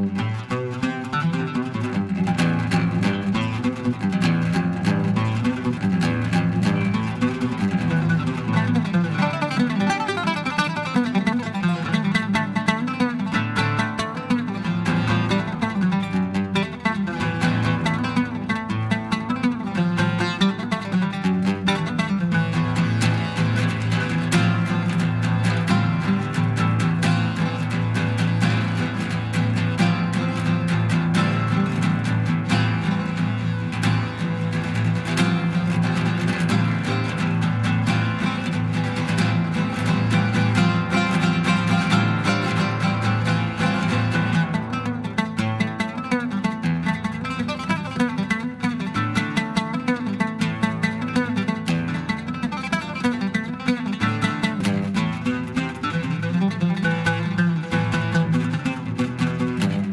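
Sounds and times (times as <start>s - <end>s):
oud played fast: 0.0s - 59.9s.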